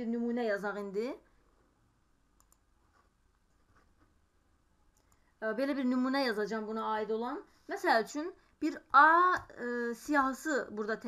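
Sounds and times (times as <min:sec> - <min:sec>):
computer mouse and keyboard clicks: 0:02.4 - 0:04.1.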